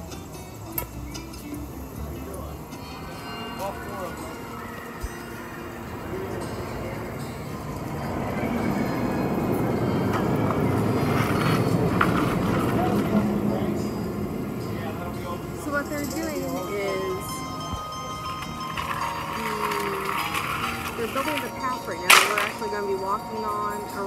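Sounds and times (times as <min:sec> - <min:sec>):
indistinct voices: 0:01.5 - 0:24.0.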